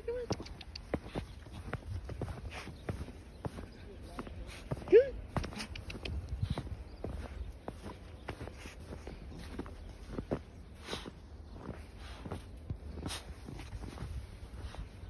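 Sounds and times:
footsteps crunching in snow: 0.1 - 15.0.

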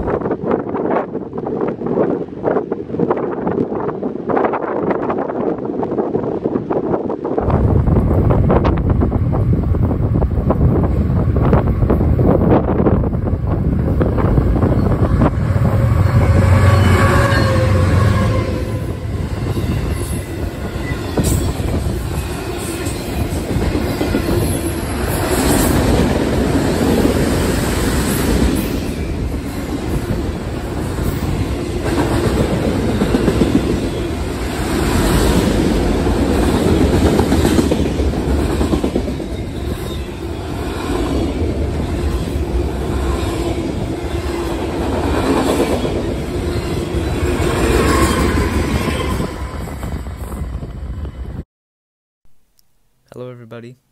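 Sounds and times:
freight train rumble: 0.0 - 51.4.

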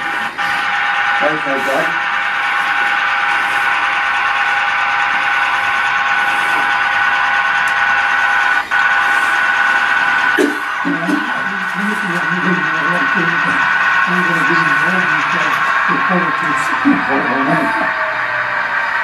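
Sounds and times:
model train motor humming: 0.0 - 19.0.

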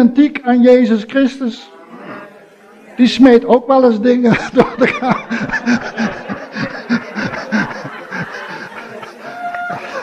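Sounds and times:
man chuckling: 4.3 - 10.0.

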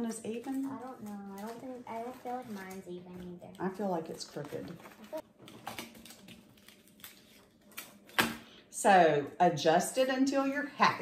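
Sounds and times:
paper filter rustling: 0.0 - 8.2.

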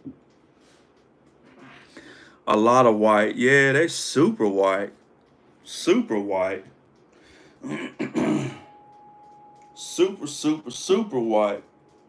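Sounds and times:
faint steady tone: 6.5 - 12.0
man clearing his throat: 7.6 - 8.7.

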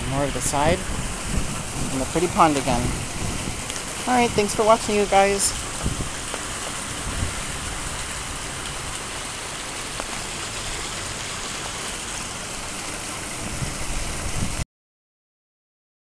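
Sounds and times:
waterfall rushing into pond: 0.0 - 14.6.

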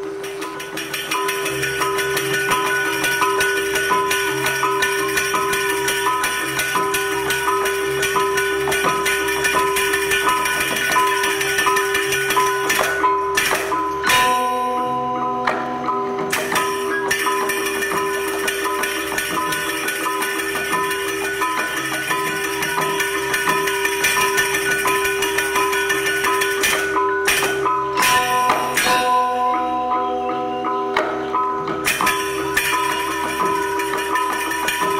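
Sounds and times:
gamelan dance music: 0.0 - 34.9.

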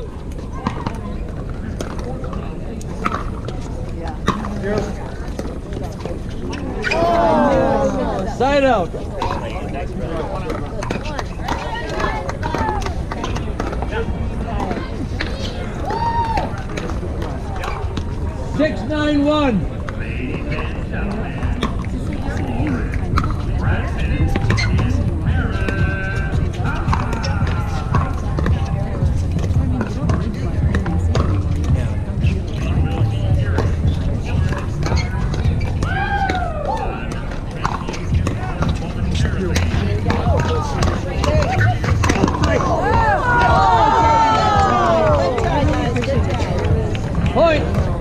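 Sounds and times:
background voices: 19.6 - 48.0
music: 21.6 - 48.0
paddles hitting plastic ball: 39.5 - 47.9.

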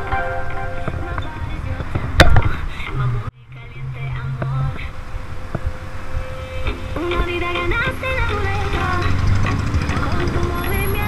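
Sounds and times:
background music: 0.0 - 2.4, 6.2 - 11.0.

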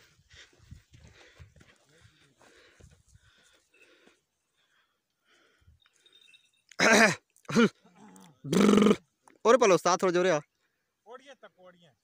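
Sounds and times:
man shouting calls: 6.8 - 9.0.

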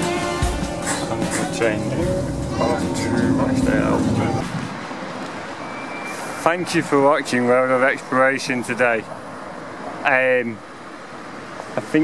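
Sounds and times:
street noise: 0.0 - 12.0
train carriage rumble: 0.6 - 5.6
voices: 0.8 - 4.7.

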